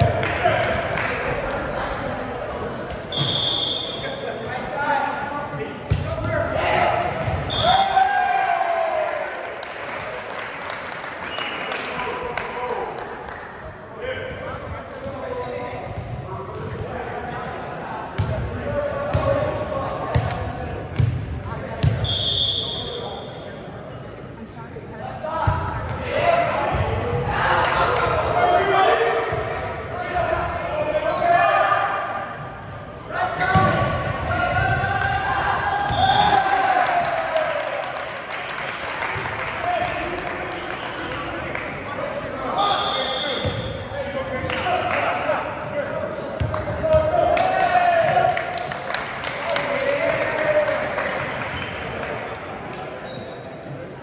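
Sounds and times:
referee's whistle: 0:03.1 - 0:04.2, 0:07.4 - 0:08.0, 0:22.0 - 0:23.3, 0:34.5 - 0:36.4, 0:42.6 - 0:43.8
players shouting: 0:33.1 - 0:37.8.

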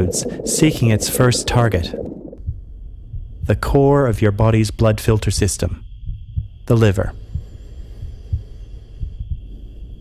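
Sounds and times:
heartbeat thumps: 0:00.0 - 0:10.0
steady low hum: 0:00.0 - 0:10.0.

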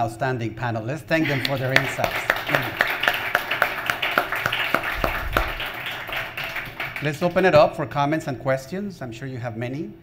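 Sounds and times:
audience applauding: 0:01.2 - 0:07.4.

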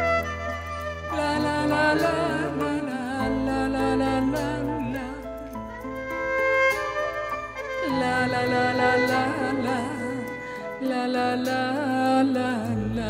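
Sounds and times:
sustained chords: 0:00.0 - 0:11.1
violin lead melody: 0:00.0 - 0:11.4
bass: 0:00.0 - 0:13.0.

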